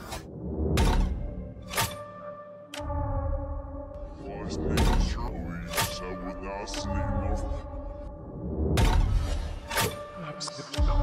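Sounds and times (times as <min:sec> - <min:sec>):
steady musical drone: 0:00.2 - 0:11.0.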